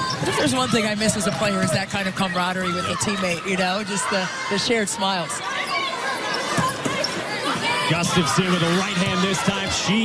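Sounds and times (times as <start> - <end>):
arena background noise: 0.0 - 10.0.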